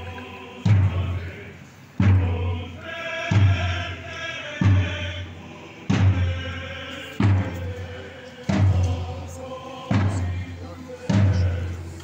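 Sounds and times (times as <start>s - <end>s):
choir singing slow chant: 0.0s - 12.0s
slow deep drum beat: 0.0s - 12.0s.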